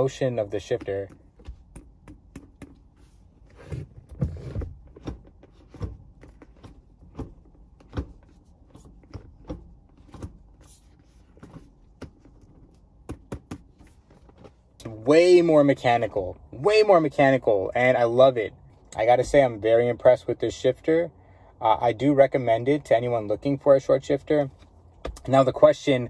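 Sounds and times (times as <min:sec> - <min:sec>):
gear shifter clicks and clunks: 0:00.0 - 0:17.9, 0:24.5 - 0:25.8.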